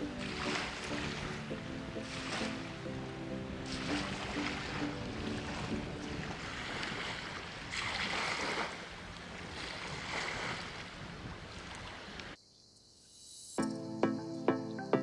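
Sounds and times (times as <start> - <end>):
sea water washing on shore: 0.0 - 12.4
wind: 0.0 - 13.6.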